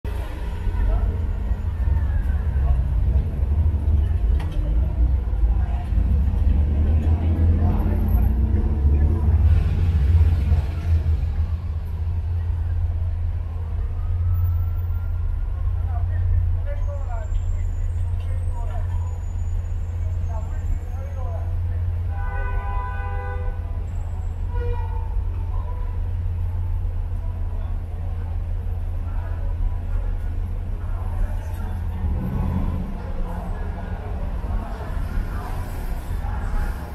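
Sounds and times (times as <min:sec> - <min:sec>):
traffic rumble: 0:00.0 - 0:36.9
people talking: 0:00.1 - 0:14.4, 0:15.4 - 0:22.2, 0:25.3 - 0:36.9.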